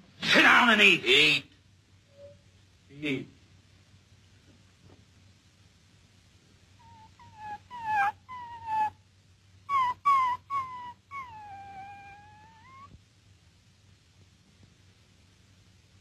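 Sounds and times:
dog whimpering: 6.8 - 9.0, 9.7 - 12.9.

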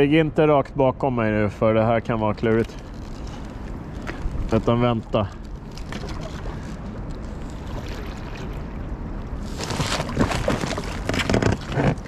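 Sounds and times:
ice crackling against kayak hull: 2.2 - 12.0.

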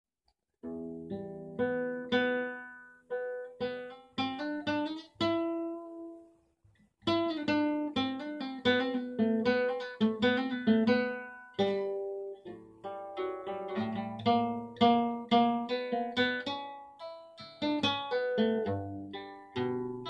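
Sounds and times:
flamenco guitar strummed chords: 0.6 - 6.3, 7.0 - 20.0.

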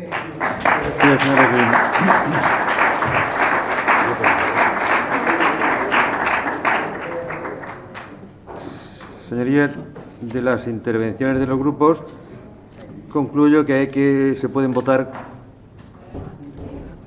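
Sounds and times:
people clapping: 0.0 - 9.2.

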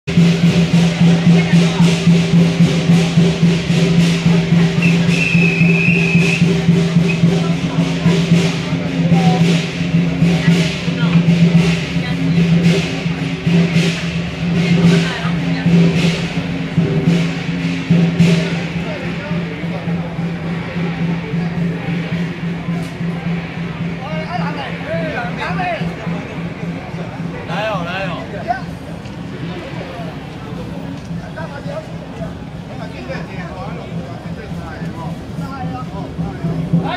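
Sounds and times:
crowd voices: 0.0 - 36.9
drums beating: 0.0 - 36.9
cymbals: 0.1 - 36.9.

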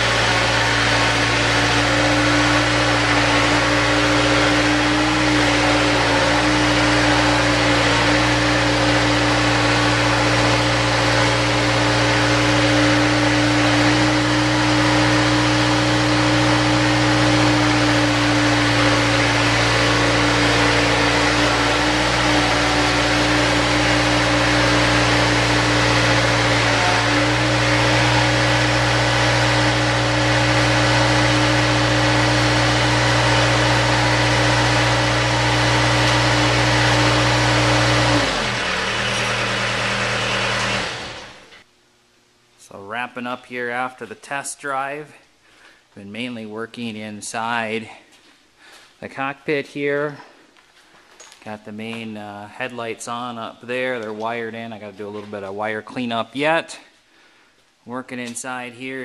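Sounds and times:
mechanical drive humming: 0.0 - 41.7.

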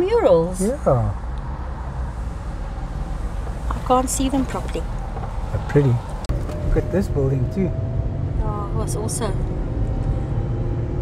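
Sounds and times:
car driving rumble: 0.0 - 11.0.

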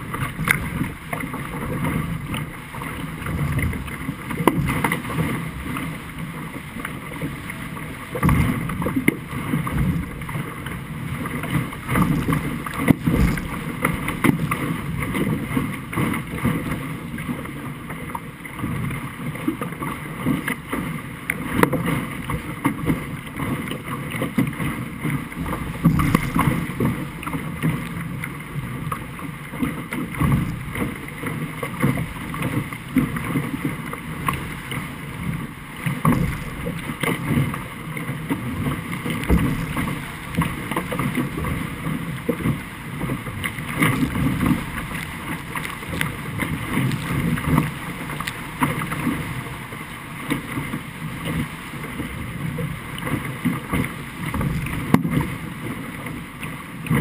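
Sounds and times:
water rushing and slapping hull: 0.0 - 57.0
wind buffeting microphone: 11.2 - 15.1, 25.2 - 27.7.

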